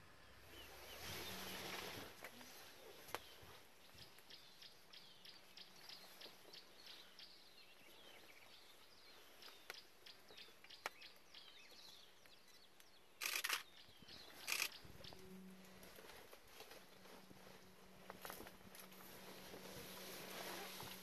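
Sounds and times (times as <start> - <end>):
small birds chirping: 0.1 - 15.6
faint low steady hum: 14.1 - 21.0.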